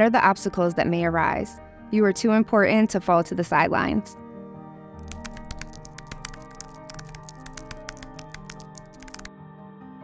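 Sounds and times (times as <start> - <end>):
soft sustained background music: 0.0 - 10.0
keyboard typing clicks: 5.0 - 9.3.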